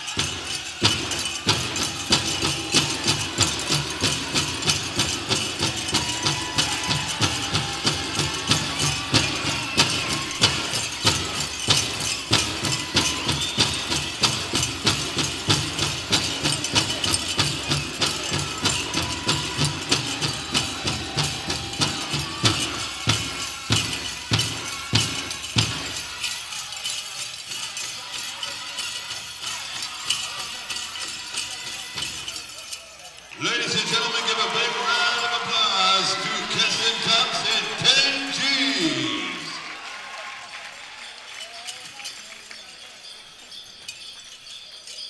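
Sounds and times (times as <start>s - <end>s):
singers' voices wavering: 0.0s - 39.9s
big hand drum beating fast: 0.1s - 26.0s.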